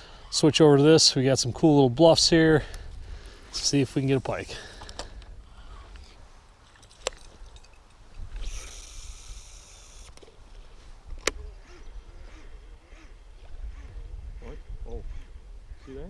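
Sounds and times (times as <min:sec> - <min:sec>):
fishing reel spool whirring: 0:08.3 - 0:10.4, 0:11.2 - 0:16.0
fishing reel sharp click: 0:08.4 - 0:10.3
wind rumble on microphone: 0:11.0 - 0:16.0.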